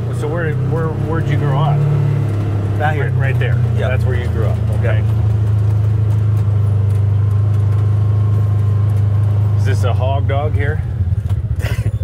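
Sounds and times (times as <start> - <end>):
vehicle engine droning: 0.0 - 12.0.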